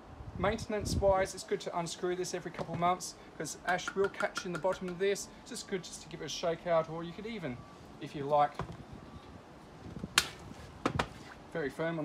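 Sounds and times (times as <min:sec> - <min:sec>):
sharp knocks on metal: 0:03.7 - 0:05.0.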